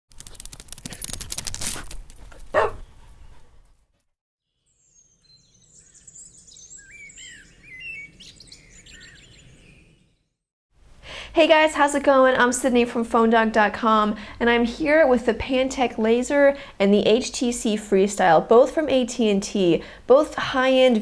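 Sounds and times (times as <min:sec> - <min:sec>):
birds chirping and singing: 0:04.6 - 0:10.3.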